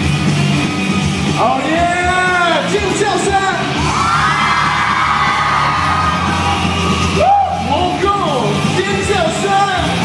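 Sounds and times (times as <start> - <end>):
pop song over pa system: 0.0 - 3.9, 4.7 - 10.0
crowd yelling: 3.5 - 8.1.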